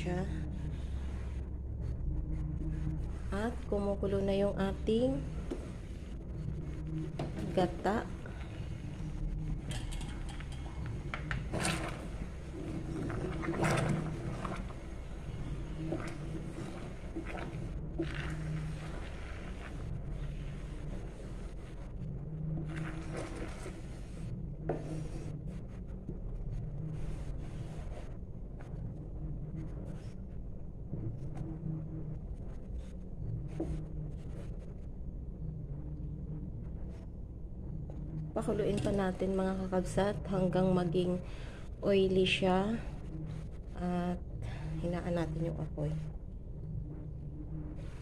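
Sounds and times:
liquid boiling in a pan: 0:04.8 - 0:30.1.

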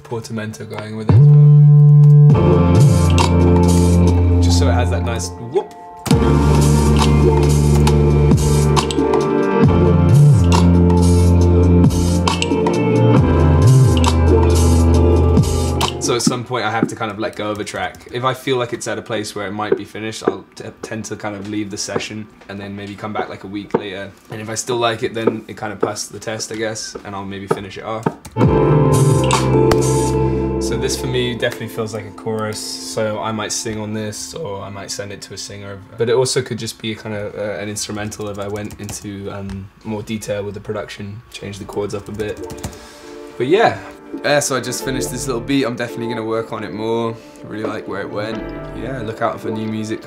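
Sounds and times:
drum pattern: 0:01.1 - 0:05.2, 0:06.1 - 0:17.4, 0:27.5 - 0:31.9, 0:41.6 - 0:42.8, 0:43.6 - 0:45.8, 0:47.6 - 0:49.6
electronic beat with keyboard chord: 0:01.1 - 0:17.1, 0:28.1 - 0:33.1, 0:42.0 - 0:49.9
deep synth bass sliding: 0:06.2 - 0:08.9, 0:09.6 - 0:16.0
hi-hat ticks: 0:10.4 - 0:12.8.

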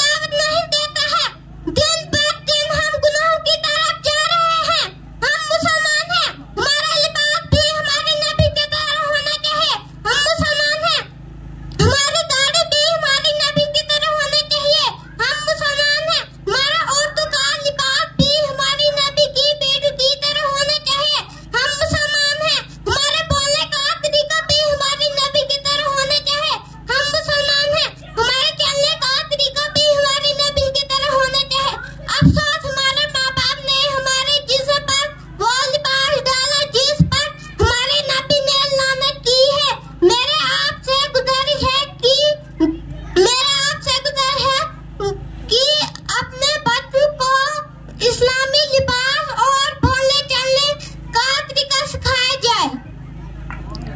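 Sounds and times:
boy singing: 0:00.0 - 0:11.0, 0:11.8 - 0:44.7, 0:45.5 - 0:52.8
boy singing into microphone: 0:26.9 - 0:42.1.

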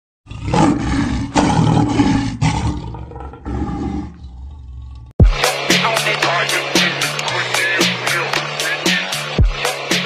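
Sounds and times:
big cat roaring: 0:00.2 - 0:05.1.

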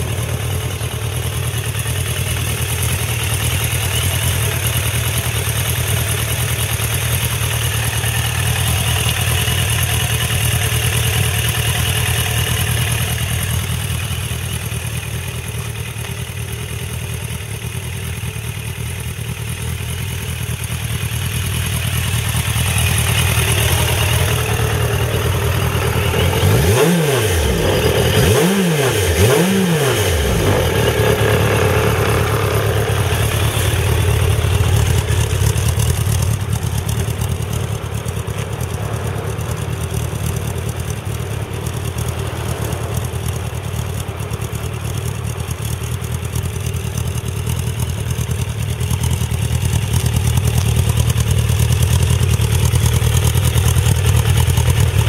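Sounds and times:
motorcycle engine idling: 0:00.0 - 0:55.0.

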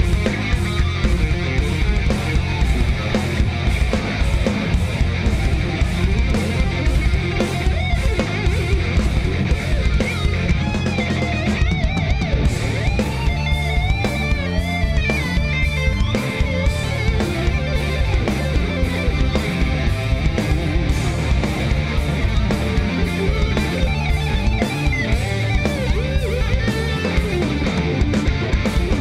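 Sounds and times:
fast electric guitar lead: 0:00.0 - 0:29.0
metal band playing live: 0:00.0 - 0:29.0.

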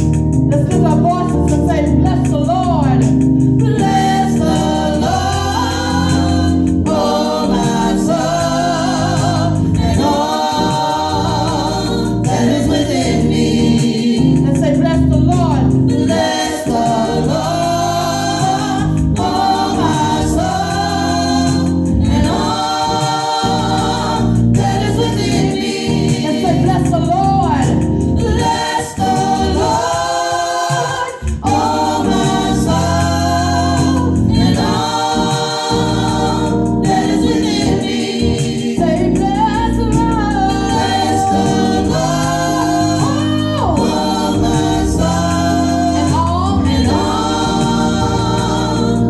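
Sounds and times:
gospel choir singing: 0:00.0 - 0:49.0.

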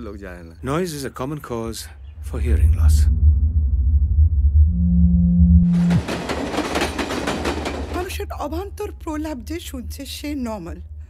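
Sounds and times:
train wheels clattering on rails: 0:05.8 - 0:09.6.

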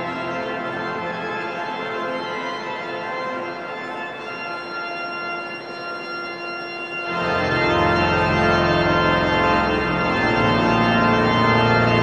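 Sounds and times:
pipe organ playing high chord: 0:00.0 - 0:12.0.

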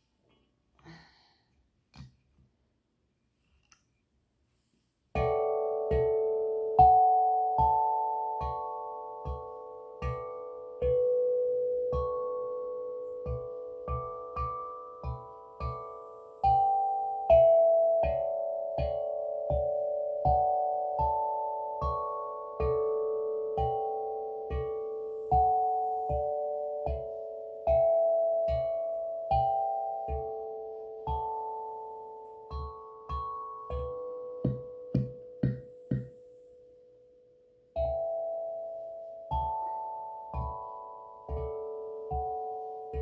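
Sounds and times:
steel tongue drum notes: 0:05.2 - 0:36.3, 0:37.7 - 0:43.0.

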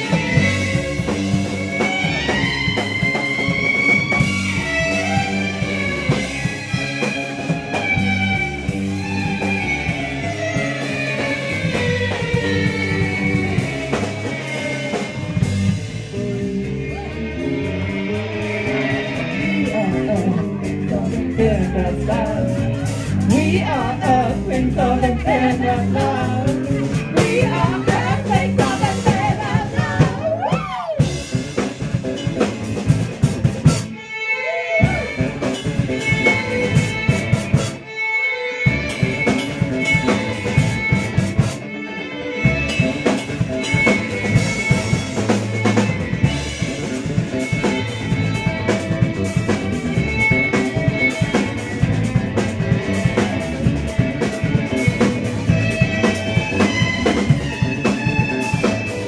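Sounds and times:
drum kit: 0:00.0 - 0:38.0, 0:38.6 - 0:59.0
fiddle: 0:00.0 - 0:59.0
guitar: 0:00.0 - 0:59.0.

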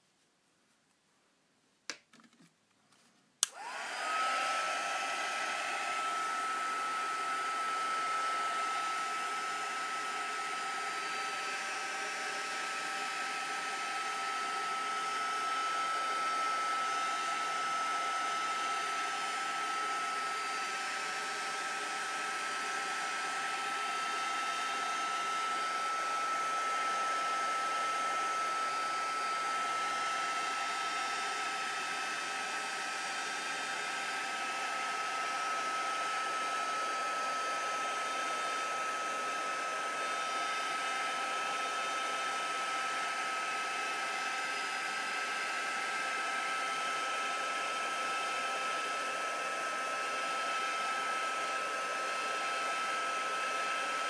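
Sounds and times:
hot-air blower running: 0:03.4 - 0:54.0.

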